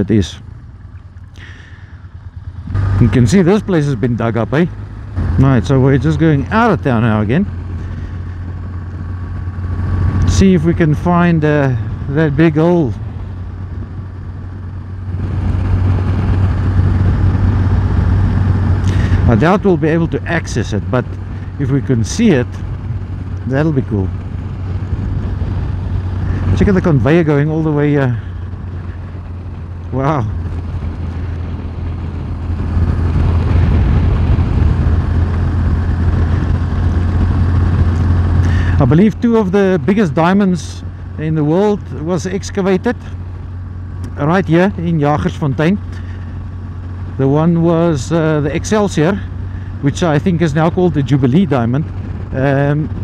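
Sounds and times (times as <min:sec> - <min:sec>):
motorcycle engine running: 0:00.0 - 0:53.0
wind rush: 0:11.1 - 0:38.9, 0:51.0 - 0:53.0.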